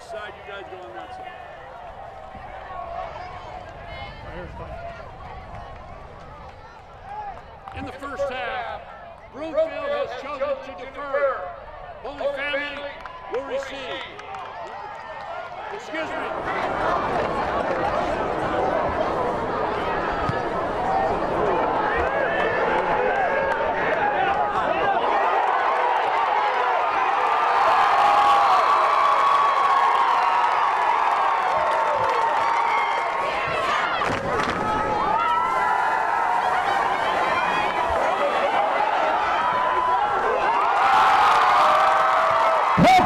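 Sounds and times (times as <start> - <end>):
crowd cheering and yelling: 0.0 - 43.0.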